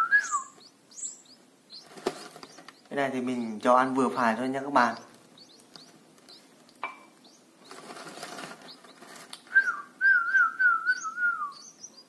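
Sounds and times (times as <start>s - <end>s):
chicks begging cheeps: 0.0s - 2.8s, 7.1s - 12.0s.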